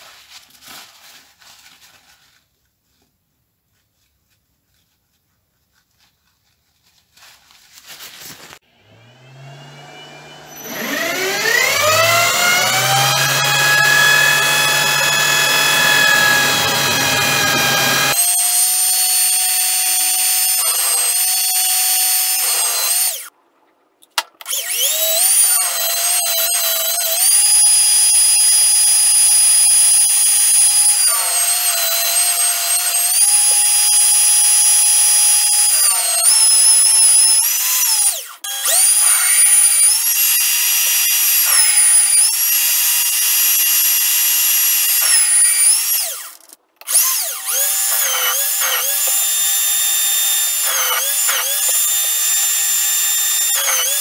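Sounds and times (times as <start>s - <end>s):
power tool whining: 8.6s - 23.3s, 24.5s - 54.0s.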